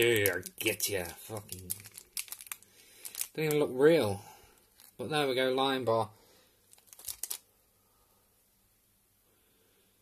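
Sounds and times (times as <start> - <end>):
handling clicks and rustles: 0.0 - 3.7, 6.7 - 7.4.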